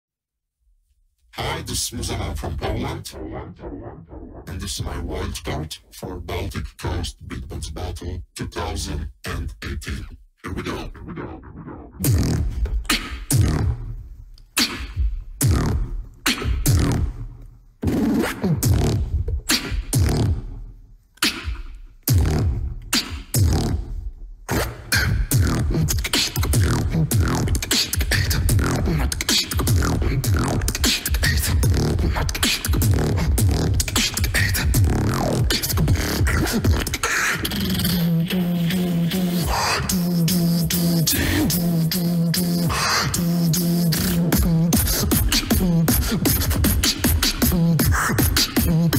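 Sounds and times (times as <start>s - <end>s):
beatboxing into microphone: 1.4s - 48.9s.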